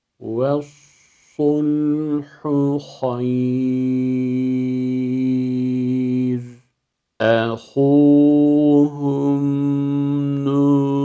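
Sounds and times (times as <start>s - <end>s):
man chanting melodically: 0.2s - 6.6s, 7.2s - 11.0s.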